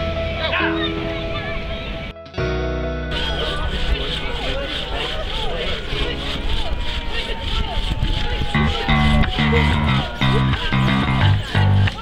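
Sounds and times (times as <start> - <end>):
hand saw rasping through log: 3.1 - 12.0
people's voices: 3.1 - 12.0.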